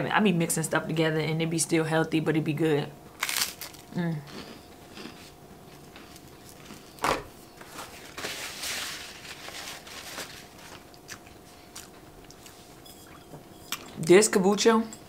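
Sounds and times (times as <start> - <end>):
person chewing crunchy food: 3.2 - 7.0, 10.4 - 13.9
paper napkin rustling: 7.6 - 10.9.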